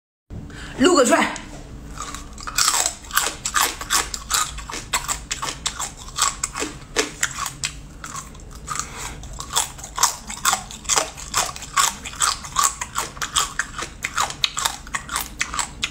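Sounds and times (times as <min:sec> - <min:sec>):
crunching crab shells: 0:01.9 - 0:15.9.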